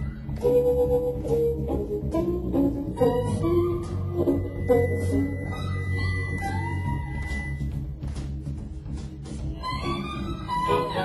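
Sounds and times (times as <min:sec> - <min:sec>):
bass: 0:00.0 - 0:11.0
drums: 0:00.0 - 0:11.0.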